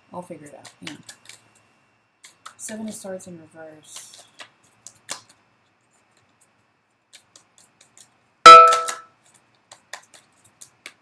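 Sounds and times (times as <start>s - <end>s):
sharp metallic clang: 8.5s - 9.0s.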